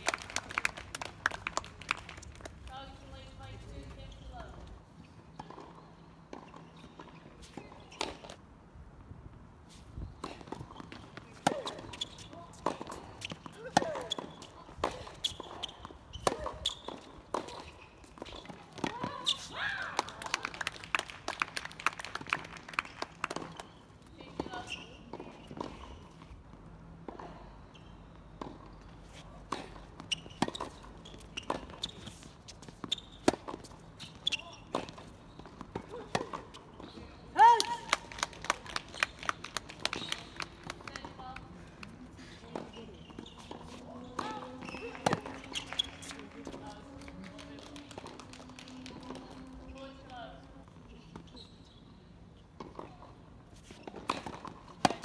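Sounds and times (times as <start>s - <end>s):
tennis ball bouncing and struck: 29.4s - 37.0s, 42.5s - 49.9s, 53.8s - 55.0s.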